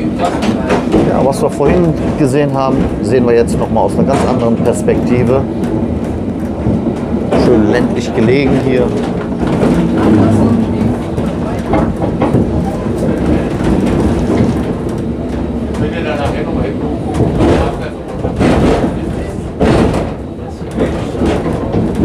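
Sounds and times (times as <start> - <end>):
tram wheels rumbling on rails: 0.0 - 22.0
car body rattling: 0.1 - 22.0
loud knocks: 0.2 - 22.0.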